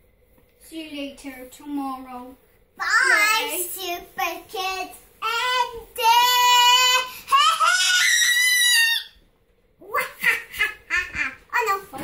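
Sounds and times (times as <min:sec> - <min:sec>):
child screaming: 0:06.6 - 0:09.2.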